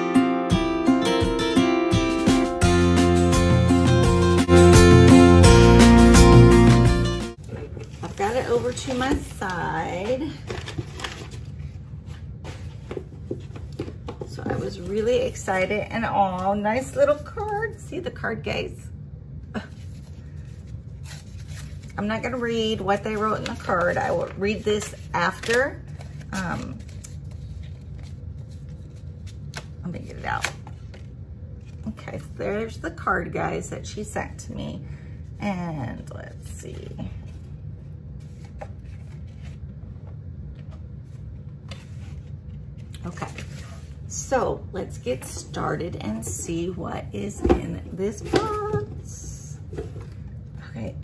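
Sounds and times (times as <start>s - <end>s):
low room hum: 7.3s - 51.0s
paper card rustling: 7.4s - 15.5s, 19.7s - 32.4s, 38.2s - 44.0s.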